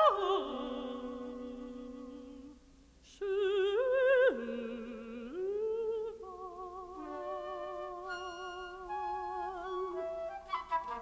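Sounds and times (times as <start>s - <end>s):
contralto voice singing: 0.0s - 10.3s
alto flute: 6.8s - 11.0s.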